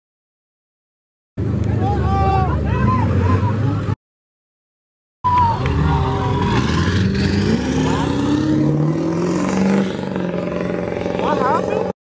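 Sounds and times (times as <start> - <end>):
car engine accelerating: 5.3 - 11.9.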